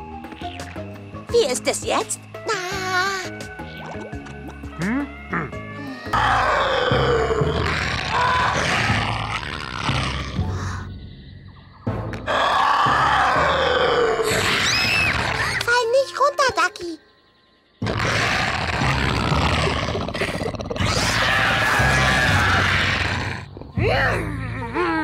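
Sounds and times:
background music: 0:00.0 - 0:25.0
cartoon dinosaur roars: 0:06.1 - 0:10.6, 0:12.3 - 0:15.5, 0:17.8 - 0:23.5.

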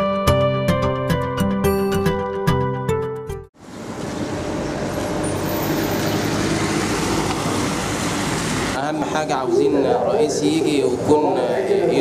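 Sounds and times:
road traffic noise: 0:03.5 - 0:12.0
man speaking: 0:08.8 - 0:12.0.

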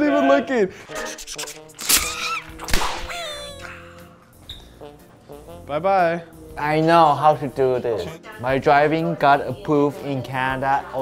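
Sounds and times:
wavering cartoon calls: 0:01.0 - 0:04.1.

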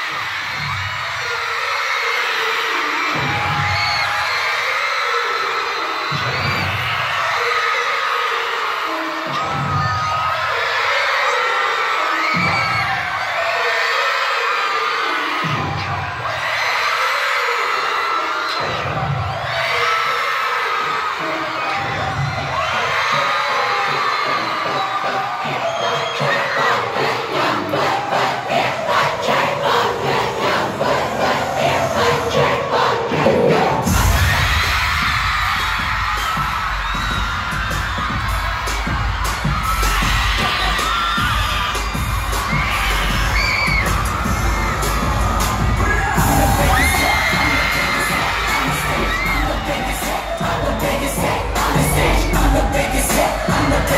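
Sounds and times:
crowd screaming and cheering: 0:00.0 - 0:53.9
fast pulsing beat: 0:28.6 - 0:53.9
music with heavy bass: 0:30.3 - 0:53.9.

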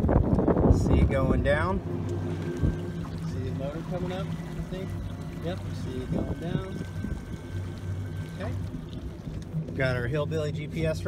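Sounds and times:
outboard motor idling: 0:00.0 - 0:11.0
thin motor whine: 0:00.0 - 0:11.0
water splashing: 0:00.0 - 0:11.0.

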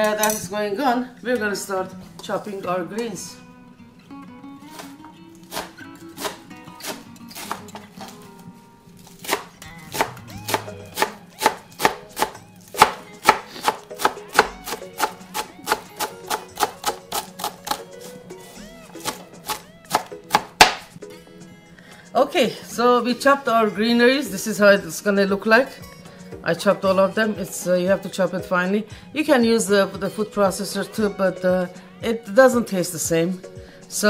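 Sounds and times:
knife chopping on plastic board: 0:04.7 - 0:08.1, 0:09.2 - 0:17.8, 0:19.0 - 0:20.9.

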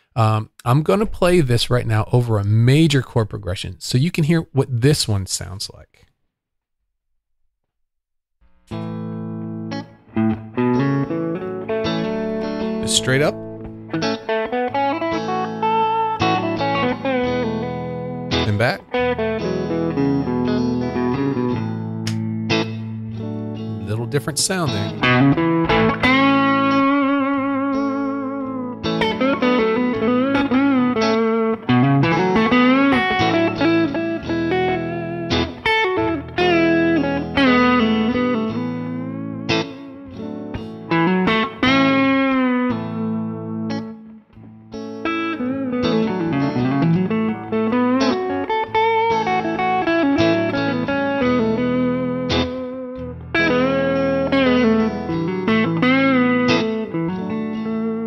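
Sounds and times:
backing track chord progression: 0:08.4 - 0:58.0
guitar playing lead lines: 0:08.4 - 0:58.0.

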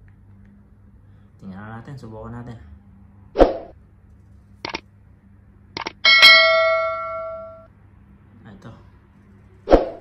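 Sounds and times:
bright bell ding: 0:06.1 - 0:07.7.

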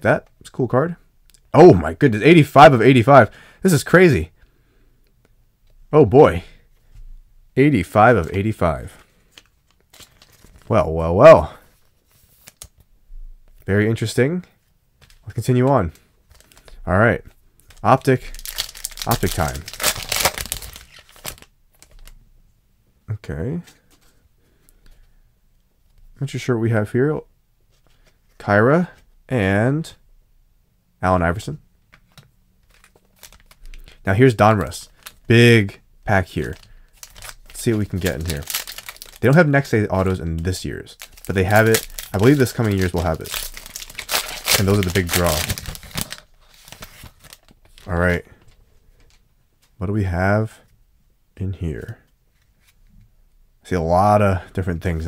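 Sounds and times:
cards rustling: 0:07.7 - 0:10.9, 0:11.6 - 0:12.9, 0:15.0 - 0:16.8, 0:17.4 - 0:22.2, 0:31.9 - 0:49.7
foil wrapper crinkling: 0:09.3 - 0:10.7, 0:16.3 - 0:16.8, 0:17.6 - 0:22.2, 0:32.6 - 0:35.4, 0:36.1 - 0:48.1.

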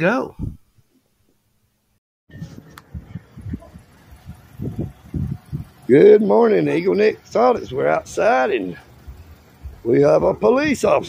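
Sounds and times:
microphone handling thumps: 0:09.0 - 0:10.9.

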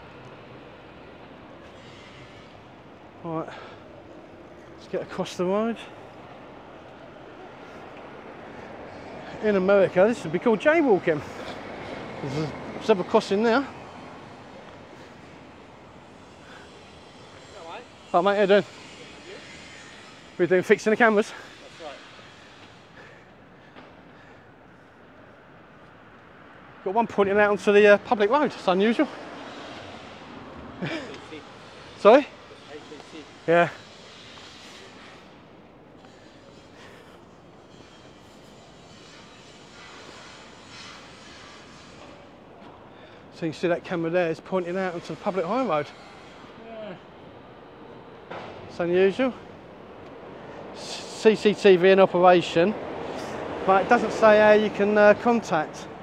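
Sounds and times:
city street traffic hum: 0:00.0 - 0:56.0.

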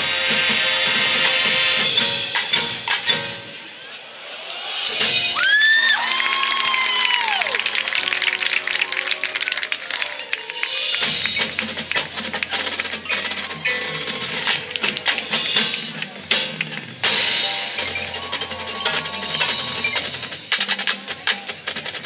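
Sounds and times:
marching band playing: 0:00.0 - 0:03.6, 0:04.9 - 0:22.0.

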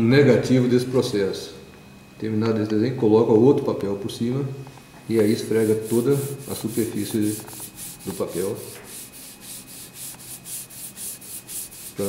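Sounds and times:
hand rubbing paper: 0:05.1 - 0:12.0.

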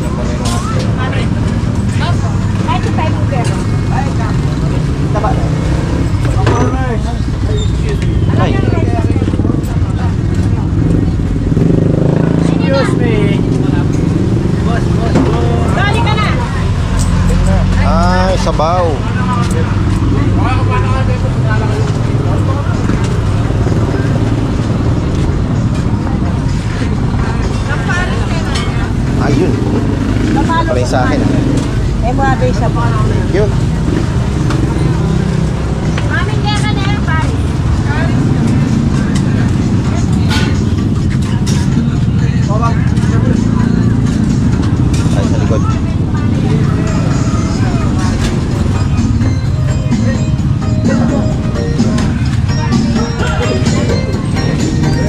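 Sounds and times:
people talking indistinctly: 0:00.0 - 0:55.0.

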